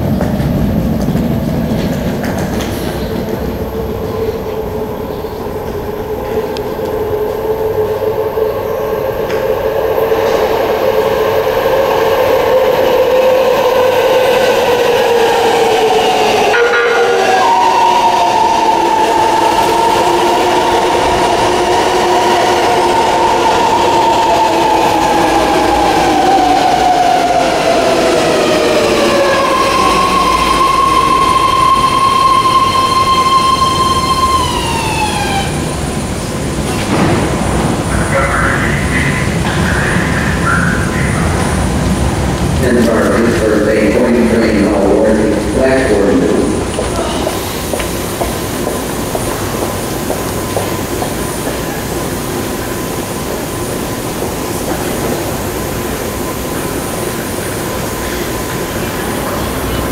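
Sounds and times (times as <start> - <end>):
train whine: 0.0 - 59.9.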